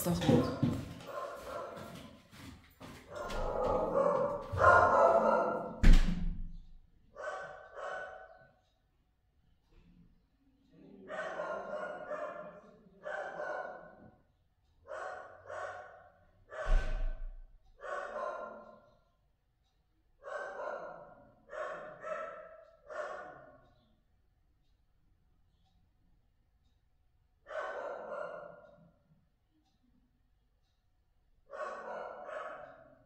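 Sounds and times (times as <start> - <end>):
dog barking: 0.2 - 2.0, 3.1 - 5.8, 7.1 - 8.6, 11.0 - 14.2, 14.8 - 17.2, 17.8 - 19.0, 20.2 - 23.7, 27.4 - 28.9, 31.4 - 33.0.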